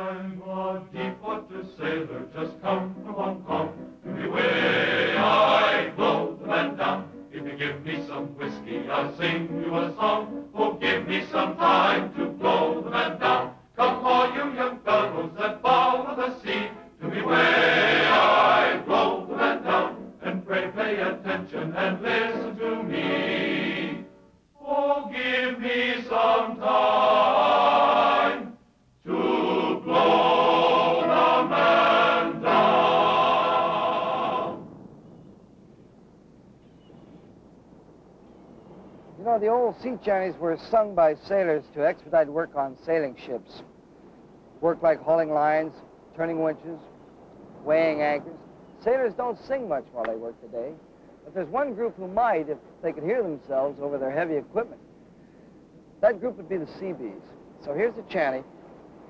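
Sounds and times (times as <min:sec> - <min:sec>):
chorus singing a sea shanty: 0:00.0 - 0:34.8
faint hiss: 0:00.0 - 0:59.0.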